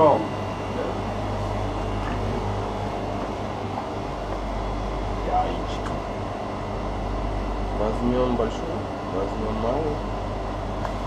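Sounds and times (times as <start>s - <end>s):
refrigeration and ventilation hum: 0.0s - 11.0s.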